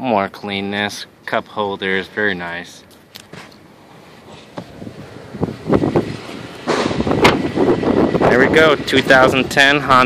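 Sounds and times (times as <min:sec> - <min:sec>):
wind on microphone: 0:04.6 - 0:09.6.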